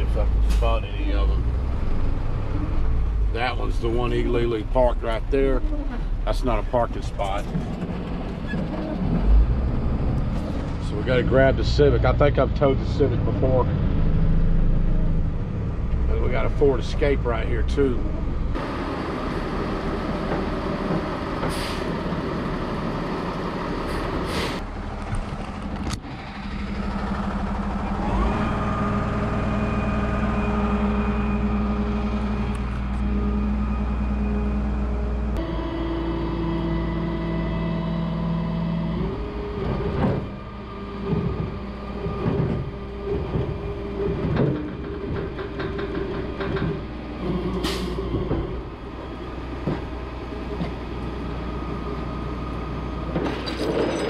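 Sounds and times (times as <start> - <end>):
tow truck hydraulics and engine hum: 18.0 - 54.0.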